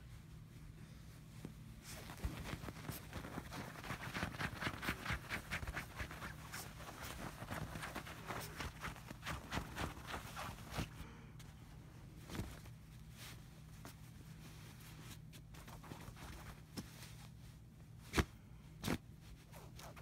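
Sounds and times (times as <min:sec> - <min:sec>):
bedding rustling and scratching: 0:00.0 - 0:20.0.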